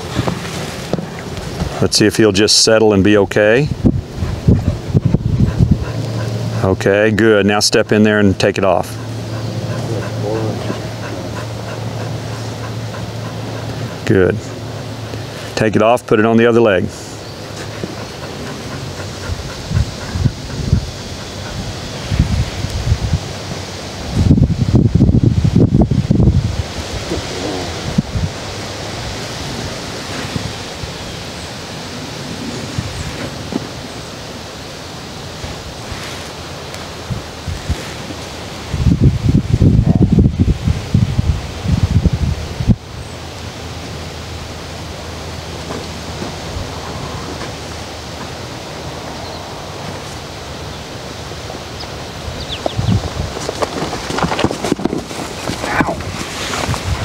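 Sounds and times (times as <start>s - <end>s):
wind buffeting microphone: 0.0s - 15.3s, 17.3s - 31.1s, 37.0s - 43.2s, 51.8s - 57.0s
low rumbling wind gusts: 0.0s - 57.0s
outdoor hiss: 6.0s - 20.2s, 20.9s - 52.8s.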